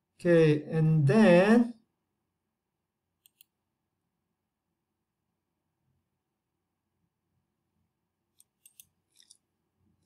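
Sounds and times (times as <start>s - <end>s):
computer mouse clicks: 3.2s - 3.6s, 8.3s - 9.4s.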